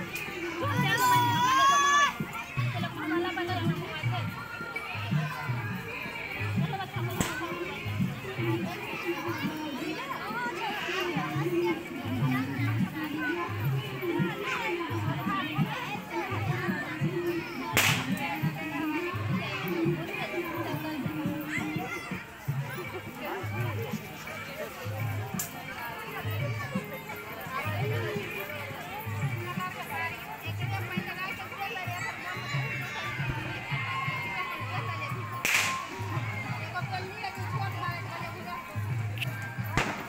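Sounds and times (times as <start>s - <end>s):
background music: 0.0s - 40.0s
crowd noise: 0.0s - 40.0s
voices: 0.0s - 40.0s
sharp crack: 17.8s - 18.1s, 35.4s - 35.9s, 39.8s - 40.0s.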